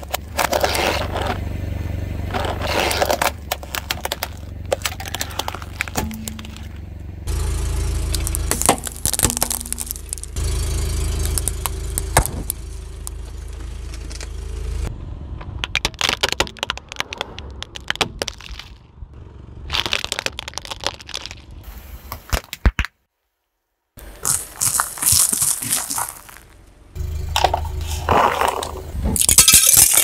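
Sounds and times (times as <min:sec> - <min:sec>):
car engine rumbling: 0:00.0 - 0:22.1, 0:24.0 - 0:30.0
tyre crushing plastic toys: 0:02.3 - 0:06.8, 0:08.1 - 0:10.4, 0:11.2 - 0:13.2, 0:15.6 - 0:18.8, 0:19.7 - 0:21.6, 0:24.0 - 0:26.6, 0:27.4 - 0:30.0.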